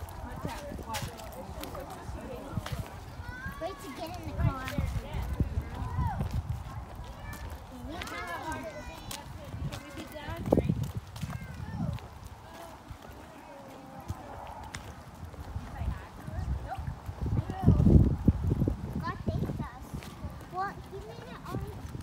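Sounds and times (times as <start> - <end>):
faint voices: 0.0 - 22.0
footsteps on pavement: 0.0 - 22.0.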